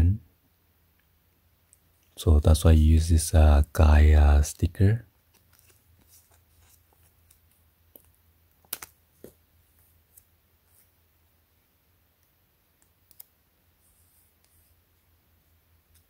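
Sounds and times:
sticker peeling clicks and crackles: 7.2 - 9.0, 12.8 - 13.3.

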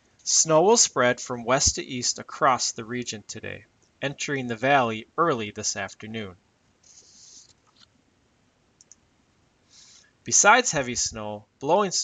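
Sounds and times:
soft breath: 6.8 - 7.6, 9.6 - 10.2
faint short clicks: 8.8 - 9.0.

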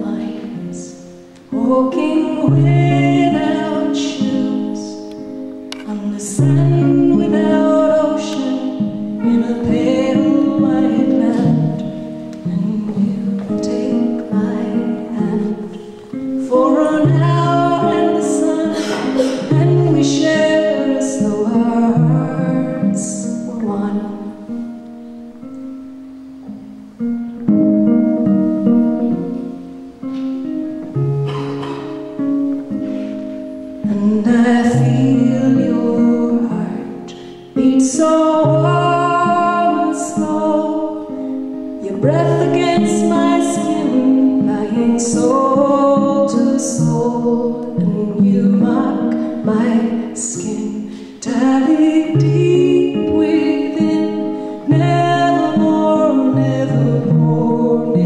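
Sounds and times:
guitar chords: 0.0 - 58.0
woman singing folk song: 0.0 - 58.0.

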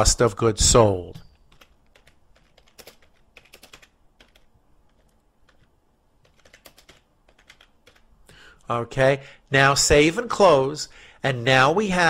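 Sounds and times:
keyboard typing: 1.2 - 8.1.

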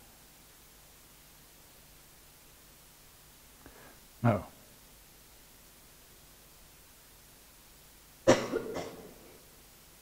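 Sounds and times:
person coughing: 8.3 - 9.2.

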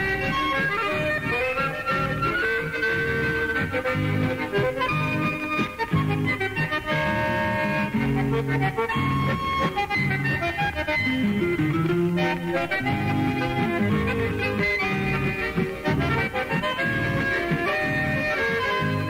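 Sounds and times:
bass line: 0.0 - 19.0
button accordion: 0.0 - 19.0
strummed and plucked guitars: 0.0 - 19.0.

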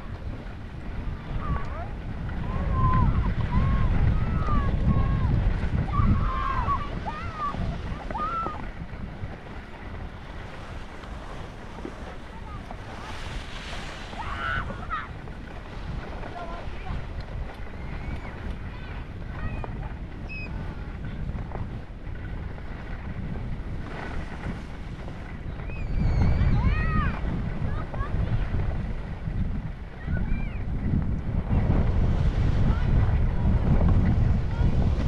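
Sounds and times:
distant skiers calling: 0.0 - 35.0
wind on microphone: 0.0 - 35.0
skis hissing over snow: 5.4 - 18.1, 22.4 - 25.6.

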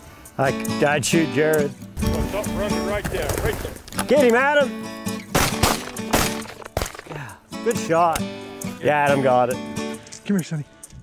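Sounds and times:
background music: 0.0 - 11.0
shotgun shots: 5.3 - 7.0.

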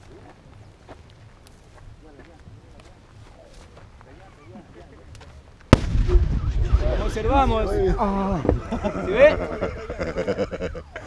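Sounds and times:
sharp explosion bang: 5.7 - 8.0
low blast rumble: 5.7 - 10.8
voices reacting: 5.8 - 11.0.

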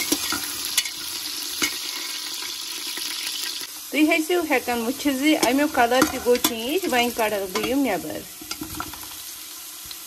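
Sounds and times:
potatoes sizzling in hot oil: 0.0 - 10.0
metal spatula scraping pot: 5.3 - 9.0.

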